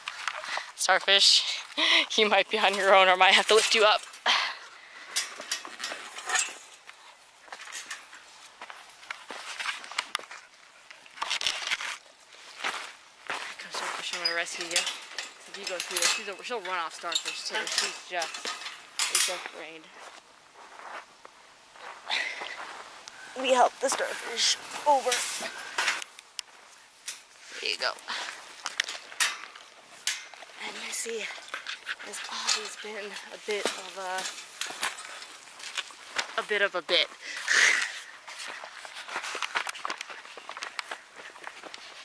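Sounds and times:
footsteps on stony dirt: 5.1 - 27.4, 28.0 - 42.0
scrapes and rustles: 5.1 - 36.8, 37.4 - 42.0.

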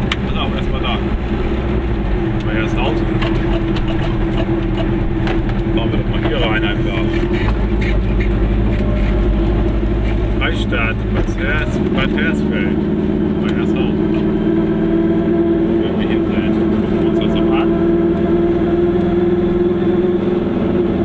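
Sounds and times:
car engine and road noise: 0.0 - 21.0.

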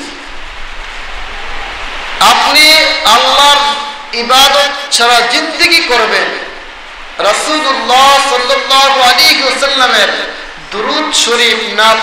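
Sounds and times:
steady hissing noise: 0.0 - 12.0.

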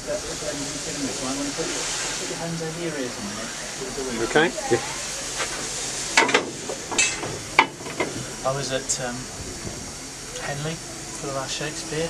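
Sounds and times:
steam hissing: 0.0 - 12.0.

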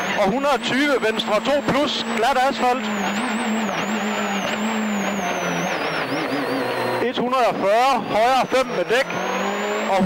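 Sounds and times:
rally car engine from inside: 0.0 - 10.0
tyre and road roar: 0.0 - 10.0.

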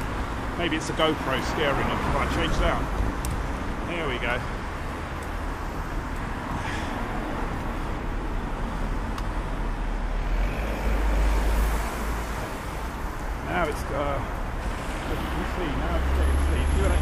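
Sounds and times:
road traffic noise: 0.0 - 17.0.

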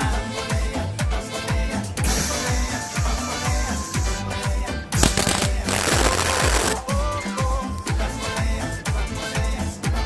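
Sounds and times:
dance music with steady beat: 3.0 - 9.0
welding torch arc crackling: 5.0 - 6.8.

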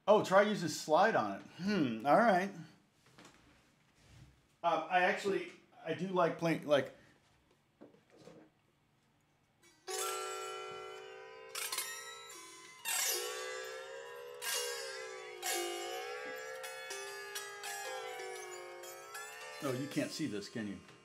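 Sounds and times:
zither chords ringing: 9.6 - 21.0.

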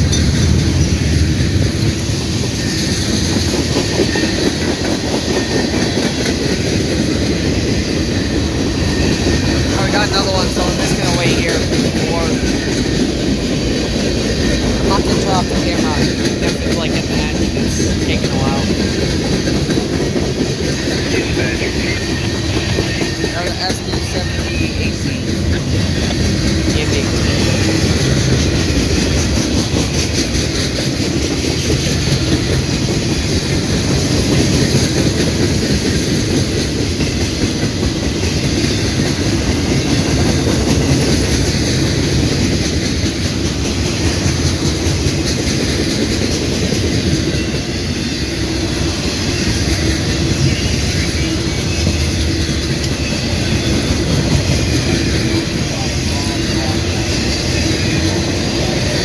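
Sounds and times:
freight train rolling past: 0.0 - 59.0
wheels clickety-clack on rails: 0.0 - 59.0.

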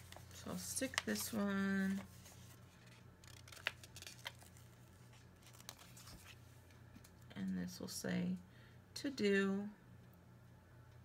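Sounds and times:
sticker sheet rustling: 0.0 - 6.4.

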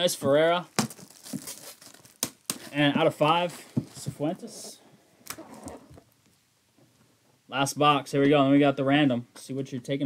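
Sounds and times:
soft scuffing of gloved hands: 1.0 - 4.8.

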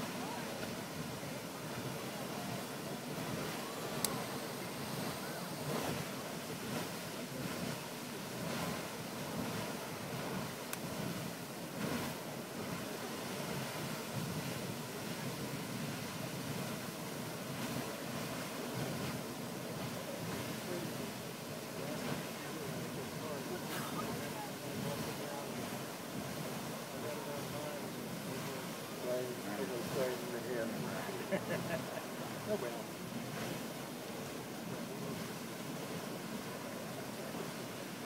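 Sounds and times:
geyser water rushing: 0.0 - 38.0.

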